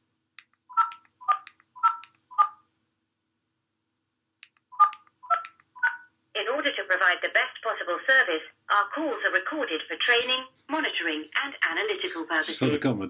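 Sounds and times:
phone keypad touch tones: 0:00.7 - 0:02.6, 0:04.7 - 0:06.1
automated recorded voice: 0:06.4 - 0:13.0.

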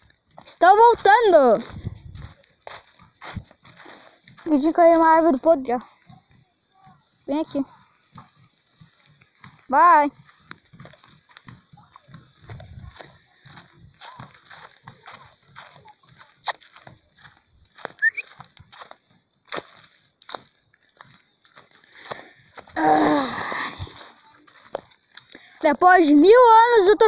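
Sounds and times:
footsteps through grass and brush: 0:00.0 - 0:27.0.

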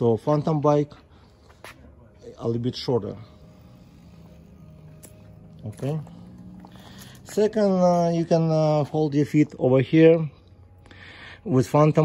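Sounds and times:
man speaking: 0:02.1 - 0:03.6, 0:05.6 - 0:06.3, 0:07.2 - 0:10.4.

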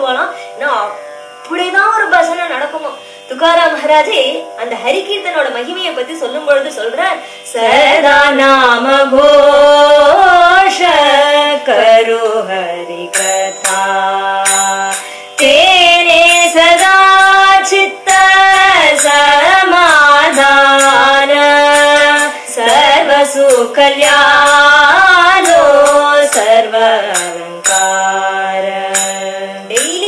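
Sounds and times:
devotional music long steady note: 0:00.0 - 0:30.0
woman singing a chant: 0:00.0 - 0:30.0
sharp percussion strikes: 0:07.8 - 0:30.0.

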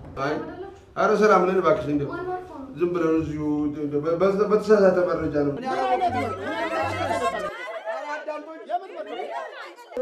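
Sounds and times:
voices chattering: 0:05.5 - 0:10.0.

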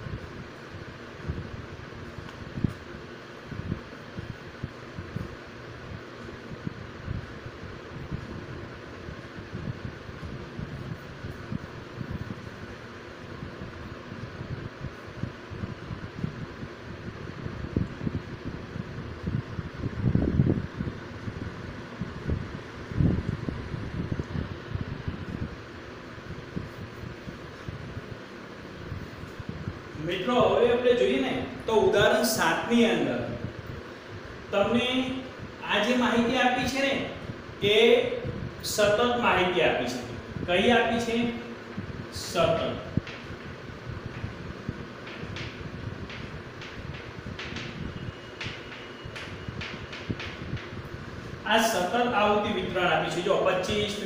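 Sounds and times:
steady background hiss: 0:00.0 - 0:54.0.

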